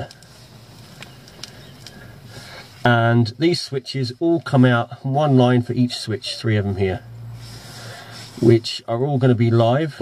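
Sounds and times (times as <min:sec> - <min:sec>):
faint clicks: 0:00.0 - 0:02.0
low steady hiss: 0:00.0 - 0:10.0
man speaking: 0:02.8 - 0:07.1, 0:08.4 - 0:10.0.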